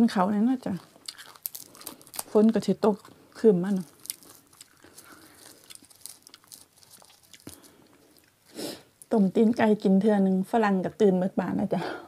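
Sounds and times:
herb sprigs snapping and tearing: 1.0 - 7.7.

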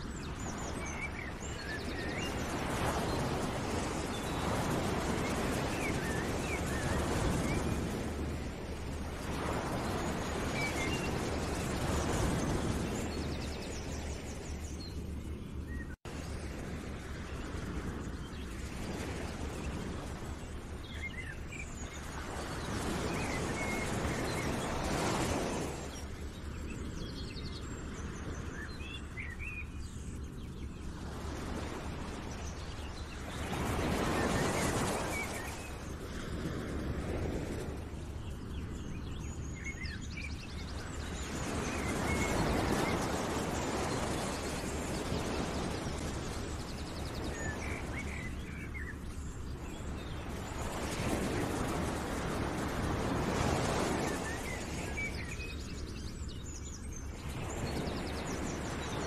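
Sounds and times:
steady rushing noise: 29.4 - 59.0.

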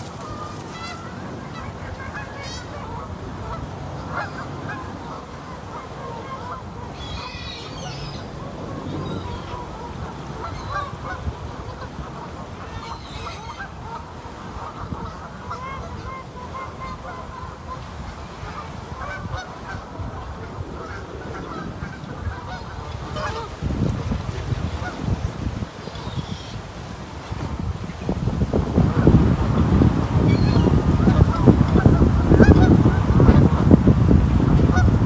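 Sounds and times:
geese honking: 0.0 - 35.0
wind rumbling on microphone: 0.0 - 35.0.

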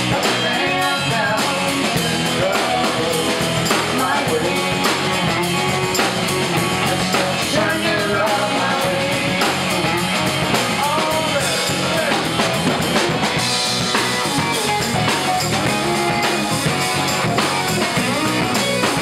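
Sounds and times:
bass guitar: 0.0 - 19.0
drum kit: 0.0 - 19.0
electric guitar: 0.0 - 19.0.

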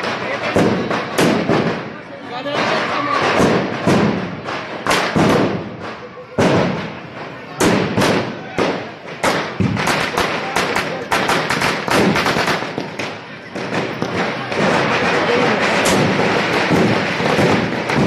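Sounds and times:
firecrackers banging and crackling: 0.0 - 18.0
crowd shouting: 2.2 - 4.8, 5.5 - 18.0.

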